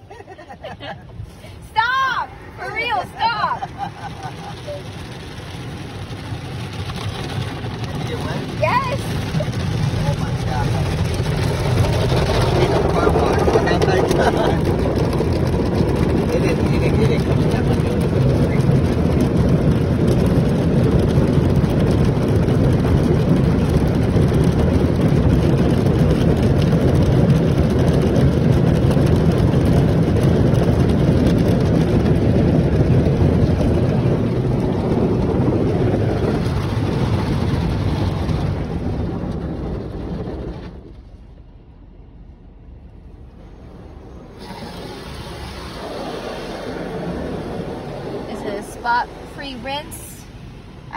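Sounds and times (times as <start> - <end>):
car wash brushes scrubbing car: 0.0 - 41.3, 42.7 - 50.9.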